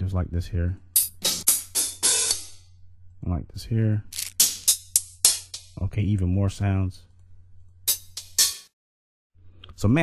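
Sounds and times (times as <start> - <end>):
hi-hat strikes: 1.0 - 2.7, 4.2 - 5.8, 7.9 - 8.7.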